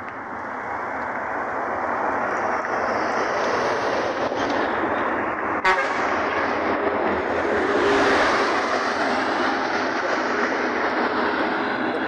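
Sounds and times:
road traffic rushing past: 0:00.0 - 0:12.0
car passing: 0:00.1 - 0:12.0.

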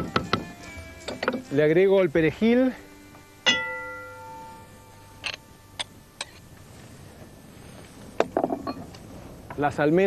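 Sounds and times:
struck metal pot ringing: 0:03.5 - 0:06.4.

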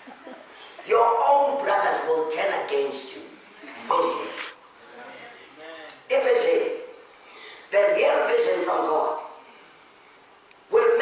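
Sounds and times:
man shouting into microphone: 0:10.7 - 0:11.0.

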